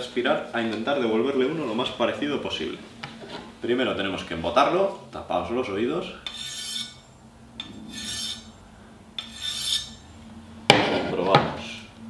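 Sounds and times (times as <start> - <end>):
knife scraping ceramic rod: 6.2 - 8.6, 9.2 - 10.0.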